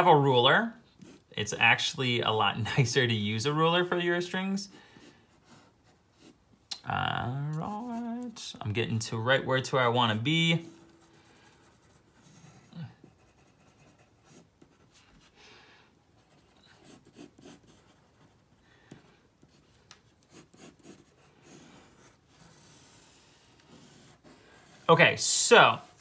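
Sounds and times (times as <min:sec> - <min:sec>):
pencil scratching on paper: 0:00.9 - 0:01.3, 0:04.7 - 0:06.4, 0:07.6 - 0:08.3, 0:10.6 - 0:15.4, 0:16.1 - 0:26.0.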